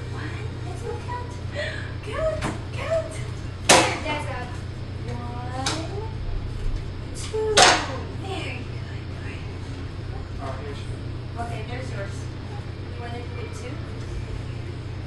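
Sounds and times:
family chatter: 0.0 - 15.0.

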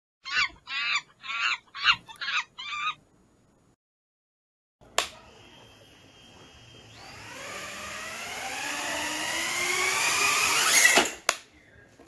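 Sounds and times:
shrill animal-like calls: 0.2 - 3.0.

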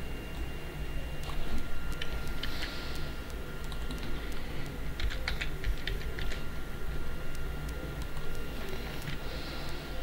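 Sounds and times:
computer keyboard typing: 1.2 - 6.4, 7.6 - 9.2.

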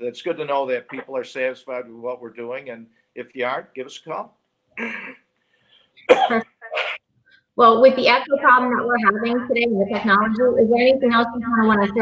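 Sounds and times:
person coughing: 4.8 - 5.3, 6.0 - 7.0.

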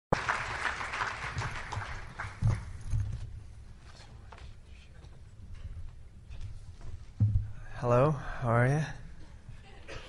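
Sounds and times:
audience applause: 0.1 - 2.9
low thump: 7.2 - 7.6.

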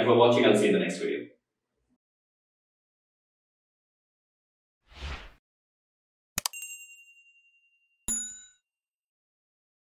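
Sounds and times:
bright ding: 6.5 - 8.6
short bell-like chime: 6.5 - 8.6.

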